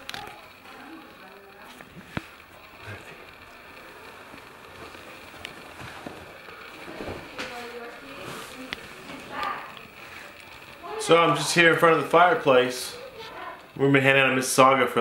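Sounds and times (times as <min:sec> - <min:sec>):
faint indistinct voices: 0:00.0 - 0:15.0.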